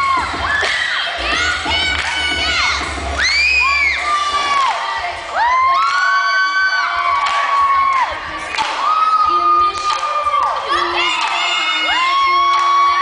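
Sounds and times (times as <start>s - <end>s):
children shouting and cheering: 0.0s - 13.0s.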